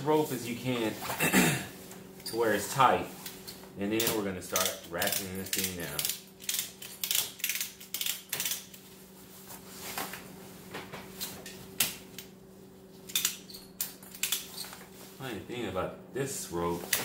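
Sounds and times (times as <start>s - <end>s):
steady low hum: 0.0s - 17.0s
rope clicking through buckle: 4.0s - 8.8s.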